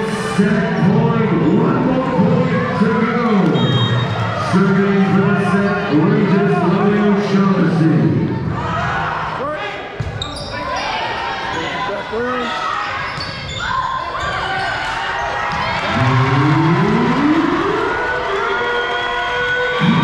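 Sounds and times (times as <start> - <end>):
crowd cheering and yelling: 0.0 - 9.9, 10.6 - 20.0
people shouting: 13.6 - 20.0.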